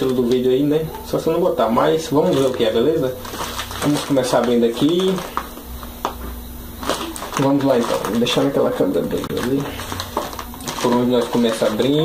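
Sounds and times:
plastic parcel handled on desk: 0:02.0 - 0:12.0.

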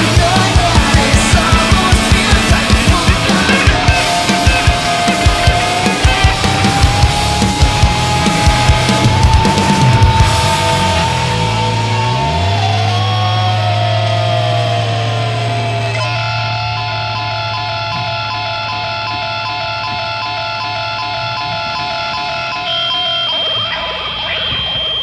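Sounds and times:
high steady tone: 0:00.0 - 0:25.0
pulsing repeating tones: 0:00.0 - 0:25.0
rock song outro: 0:00.0 - 0:25.0.

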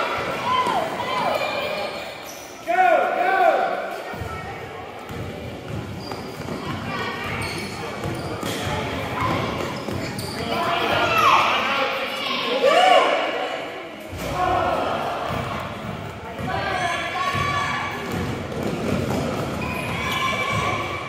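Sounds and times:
spectators' voices: 0:00.0 - 0:21.0
sneaker squeaks: 0:00.6 - 0:02.7, 0:05.1 - 0:11.3, 0:15.3 - 0:21.0.

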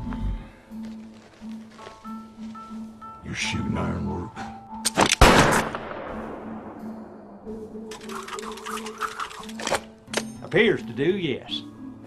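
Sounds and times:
fast rattle of clicks: 0:07.9 - 0:09.9.

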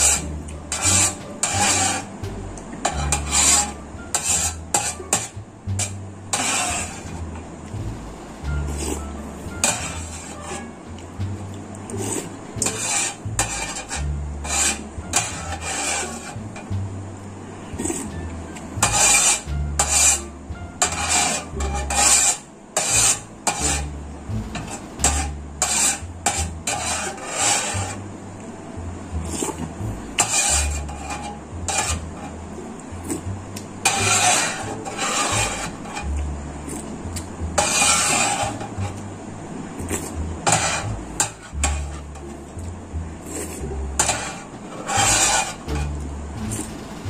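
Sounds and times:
metal spoon scraping metal tray: 0:00.0 - 0:11.0, 0:11.9 - 0:16.7, 0:17.7 - 0:28.0, 0:29.1 - 0:39.1, 0:39.8 - 0:42.4, 0:43.2 - 0:47.0.

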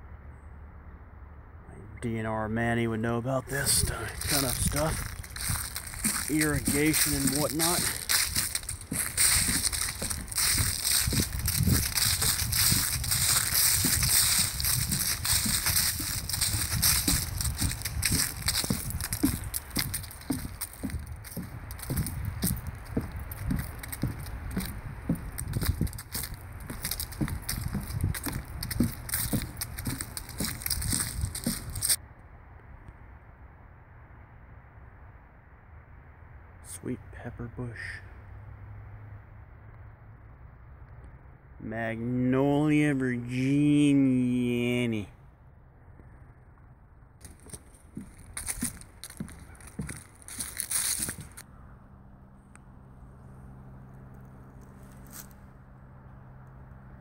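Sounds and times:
footsteps on wooden boardwalk: 0:03.4 - 0:32.0, 0:47.2 - 0:51.5, 0:54.2 - 0:55.6
leaves rustling: 0:03.4 - 0:32.0, 0:47.2 - 0:51.4, 0:53.1 - 0:55.8.

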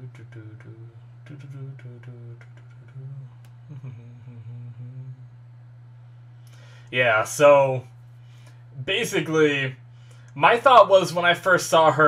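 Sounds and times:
man humming: 0:00.0 - 0:10.9.

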